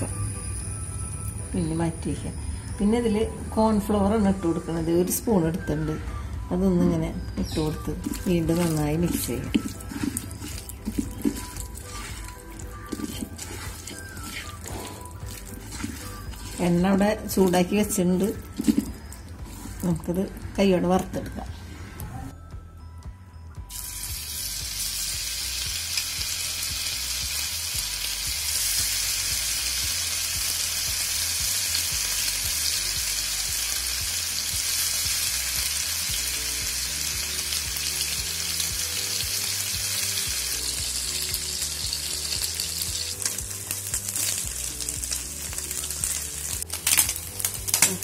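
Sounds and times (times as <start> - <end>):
fish deep-frying in oil: 7.4 - 19.2, 23.7 - 48.0.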